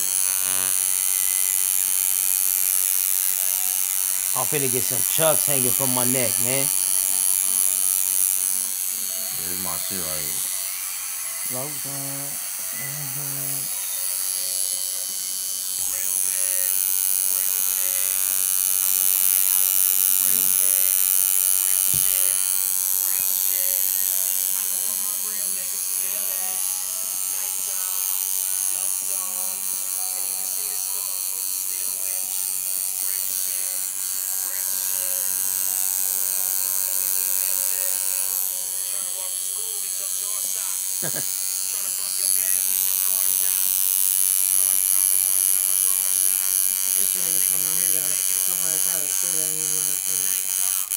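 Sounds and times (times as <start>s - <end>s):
tattoo machine buzzing: 0.0s - 50.9s.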